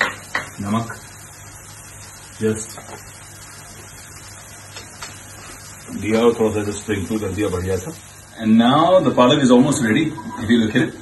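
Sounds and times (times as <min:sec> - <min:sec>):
kitchen background hiss: 0:00.0 - 0:11.0.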